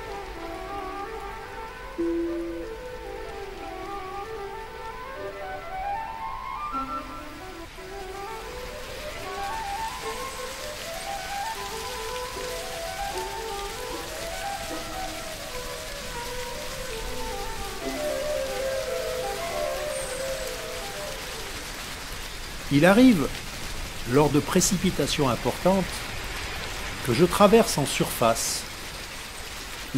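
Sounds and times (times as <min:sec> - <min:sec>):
background music melody: 0:00.0 - 0:23.4
stream running over rocks: 0:00.0 - 0:29.9.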